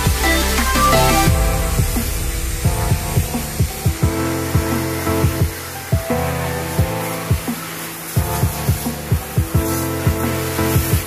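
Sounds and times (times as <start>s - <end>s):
electronic music with kick drums: 0.0s - 11.0s.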